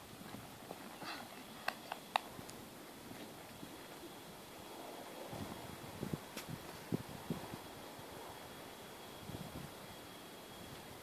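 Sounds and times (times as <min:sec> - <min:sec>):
horse hooves cantering on grass: 0:00.0 - 0:04.1
sharp clicks: 0:01.6 - 0:02.3.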